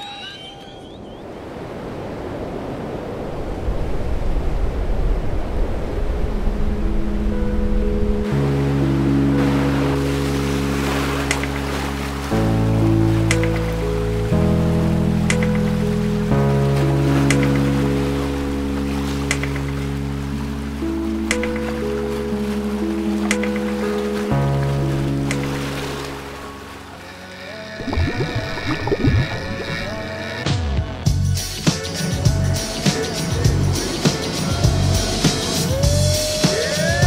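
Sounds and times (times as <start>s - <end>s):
ocean waves: 0.0s - 30.5s
background music with held chords: 6.4s - 37.0s.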